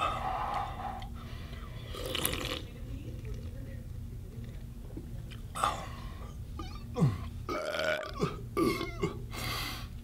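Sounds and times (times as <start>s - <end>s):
man burping: 6.9s - 9.2s.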